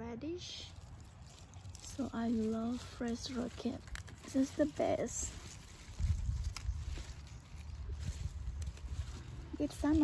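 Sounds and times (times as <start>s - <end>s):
leaves rustling: 0.4s - 10.0s
leaves snapping: 0.7s - 10.0s
low microphone rumble: 0.7s - 10.0s.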